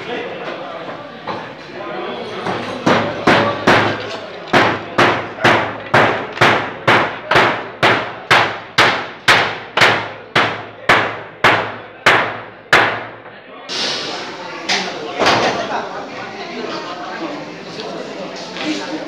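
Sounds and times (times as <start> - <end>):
hammer nailing wood on metal: 2.8 - 13.2.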